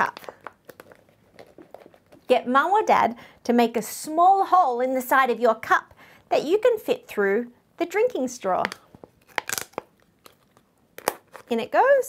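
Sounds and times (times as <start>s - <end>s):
plastic crackling and crunching: 0.0s - 2.3s, 8.6s - 11.6s.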